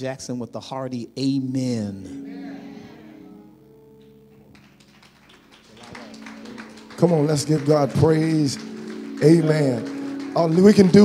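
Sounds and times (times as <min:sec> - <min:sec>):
soft held chords: 0:00.1 - 0:11.0
congregation clapping: 0:04.0 - 0:11.0.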